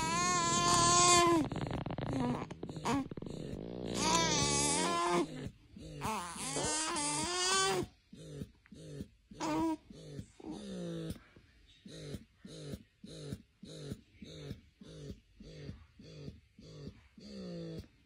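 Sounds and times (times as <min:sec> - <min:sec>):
baby grunting and whining: 0:00.0 - 0:11.1.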